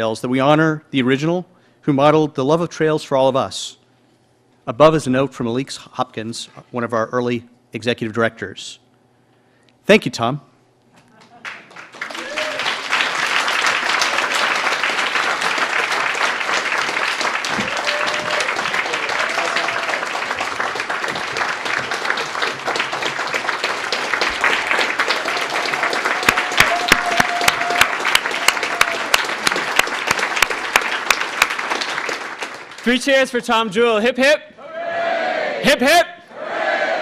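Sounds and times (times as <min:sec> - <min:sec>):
loud rhythmic claps: 0:11.1 - 0:33.2
audience applauding: 0:11.2 - 0:33.1
people cheering: 0:12.0 - 0:32.5, 0:34.6 - 0:35.6.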